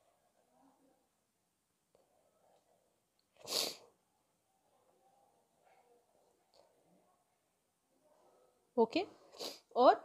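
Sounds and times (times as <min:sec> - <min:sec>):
sharp burst of breath: 0:03.5 - 0:03.8.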